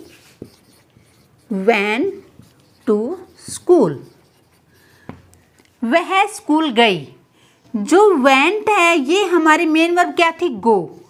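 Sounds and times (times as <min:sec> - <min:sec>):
marker tapping whiteboard: 0:00.0 - 0:05.4
marker squeaking on whiteboard: 0:00.0 - 0:06.7
woman speaking: 0:01.5 - 0:04.2, 0:05.8 - 0:11.0.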